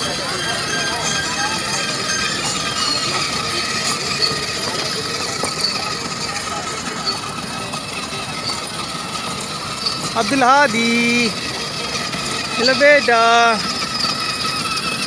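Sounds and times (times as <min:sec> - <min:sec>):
toy car electric motor whirring: 0:00.0 - 0:15.0.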